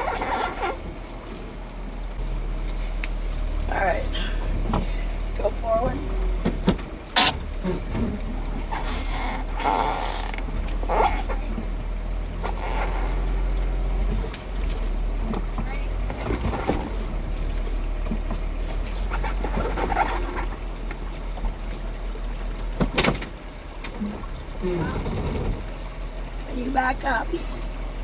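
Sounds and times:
car engine humming: 0.0s - 28.0s.

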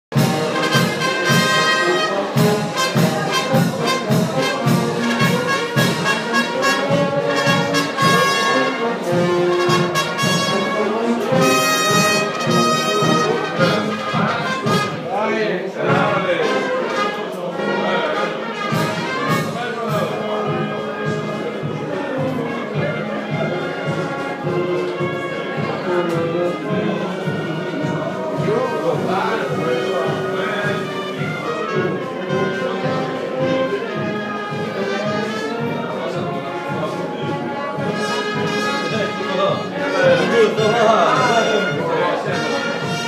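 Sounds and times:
drums keeping a steady beat: 0.1s - 15.2s, 15.8s - 43.0s
brass band playing a march: 0.1s - 43.0s.

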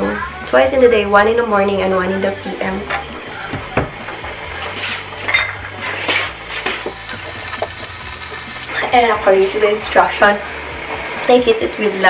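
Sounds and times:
drinking glass clinking: 5.2s - 5.7s
water running into glass: 6.8s - 8.7s.

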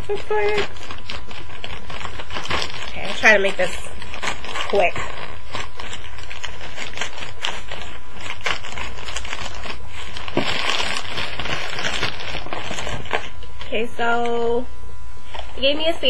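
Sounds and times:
packaging rustling and crinkling: 0.0s - 14.2s.

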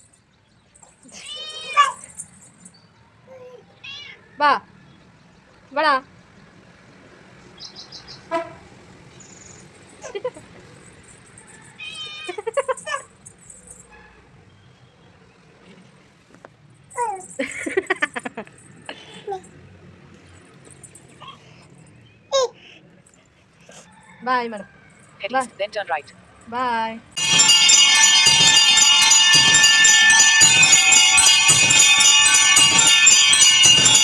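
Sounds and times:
cat meowing: 1.1s - 2.0s, 3.6s - 4.4s, 11.8s - 12.4s.

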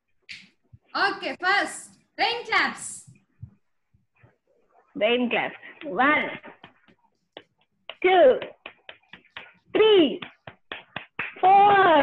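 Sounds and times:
sharp hand claps: 6.6s - 12.0s.

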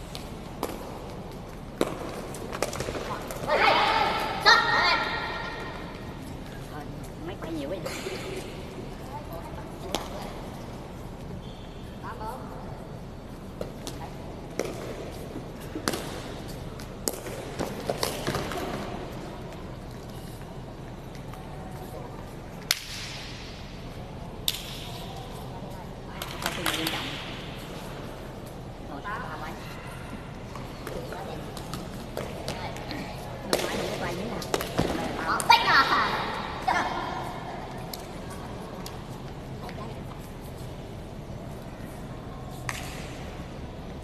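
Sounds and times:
foot kicking shuttlecock: 0.0s - 3.5s
sports hall background noise: 0.0s - 44.0s
echoing shuttlecock kicks: 0.1s - 6.0s, 13.6s - 19.0s, 42.6s - 43.6s.

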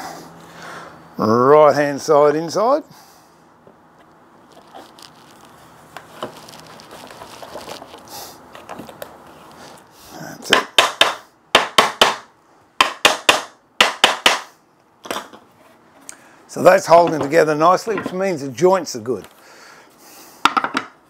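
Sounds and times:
wood being handled: 3.7s - 9.8s
hammer knocking on wood: 10.5s - 12.2s.

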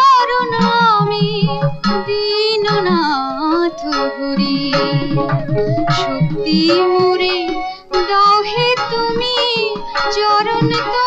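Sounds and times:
tabla beat: 0.0s - 11.0s
woman singing with vibrato: 0.0s - 11.0s.

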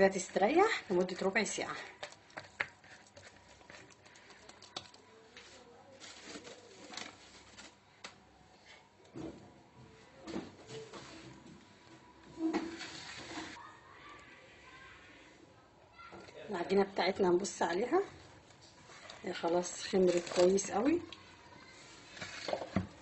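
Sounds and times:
handling noises of plastic bowl: 0.2s - 9.6s, 10.2s - 13.6s, 17.8s - 23.0s.

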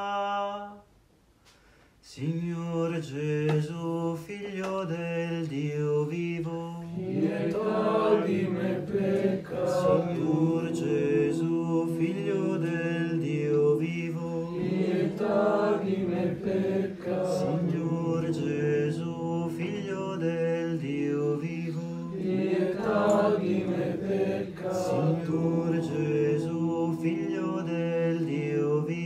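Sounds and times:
voices chanting a prayer: 5.5s - 29.0s.

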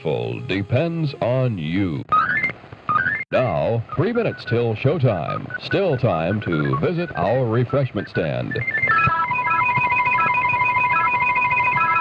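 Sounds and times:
electronic organ music: 0.0s - 12.0s.

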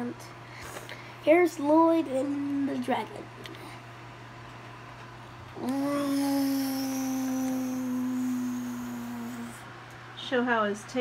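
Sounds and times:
person humming steady note: 5.6s - 9.6s.

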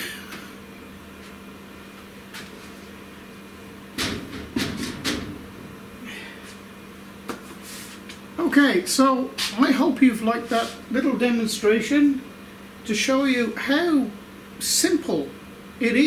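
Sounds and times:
steady low hum: 0.0s - 16.0s
wooden panel knocking on metal bed: 4.0s - 5.4s.

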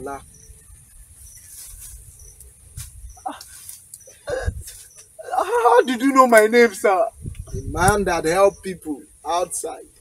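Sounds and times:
high insect chirps: 0.0s - 10.0s
insects hissing: 0.0s - 10.0s.

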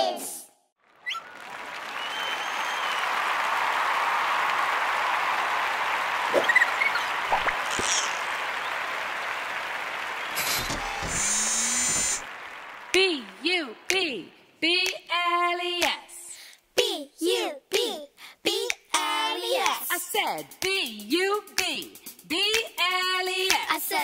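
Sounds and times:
audience applauding: 0.8s - 14.0s.

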